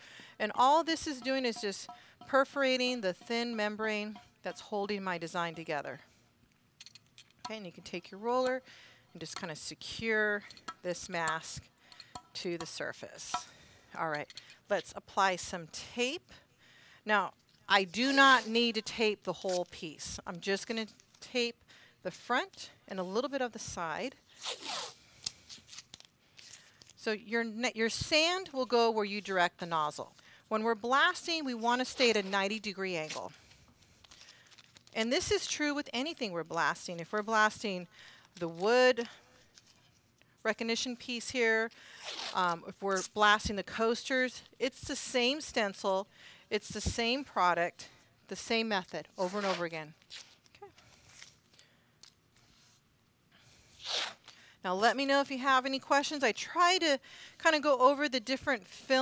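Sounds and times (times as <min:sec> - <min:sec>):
masking tape ripping off roll: 0:24.3 - 0:27.0, 0:42.0 - 0:43.1, 0:49.2 - 0:51.5, 0:53.6 - 0:54.4.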